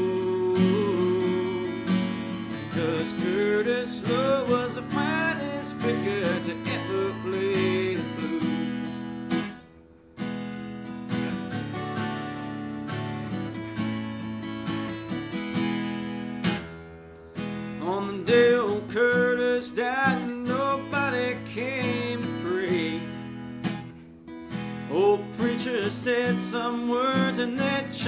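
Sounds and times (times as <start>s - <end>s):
acoustic guitar strumming chords: 0.0s - 28.0s
bending guitar melody line: 0.0s - 28.0s.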